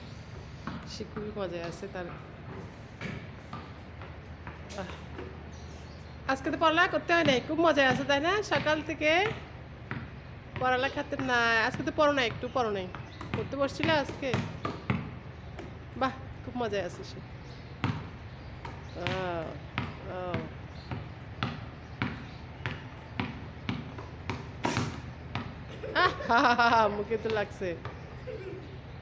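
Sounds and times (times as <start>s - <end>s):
basketball bouncing on concrete: 0.2s - 28.2s.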